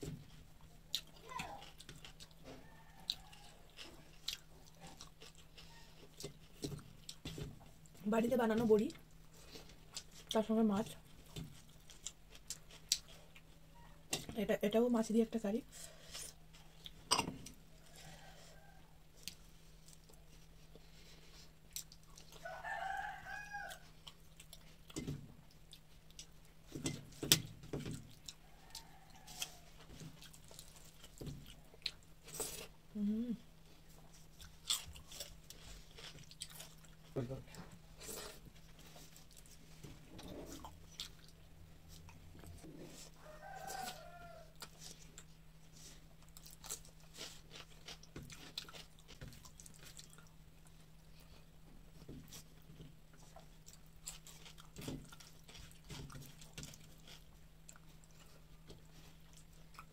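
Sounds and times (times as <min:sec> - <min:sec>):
faint low hum: 0:00.0 - 0:59.9
chewing and mouth clicks: 0:00.6 - 0:08.0, 0:08.9 - 0:13.6, 0:19.2 - 0:22.6, 0:23.6 - 0:32.8, 0:33.8 - 0:37.2, 0:40.2 - 0:42.6, 0:43.6 - 0:51.3, 0:52.2 - 0:59.9
rooster crowing: 0:02.4 - 0:03.7, 0:17.7 - 0:19.0, 0:22.3 - 0:24.0, 0:28.4 - 0:29.8, 0:43.0 - 0:44.6.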